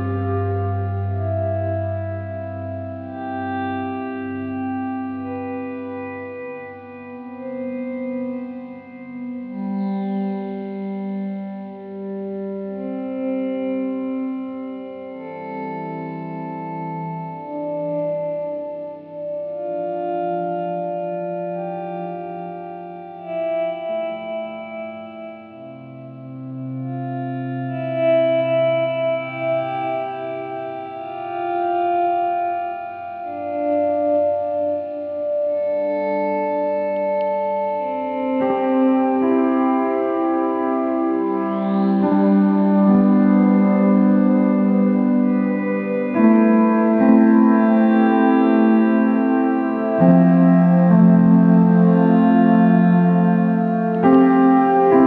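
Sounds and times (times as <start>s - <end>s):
slow relaxation music: 0.0s - 55.0s.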